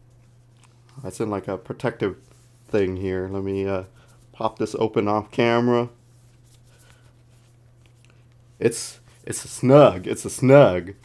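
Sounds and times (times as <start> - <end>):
low electrical hum: 0.0 - 11.0
sleeve rustling and scraping: 0.0 - 11.0.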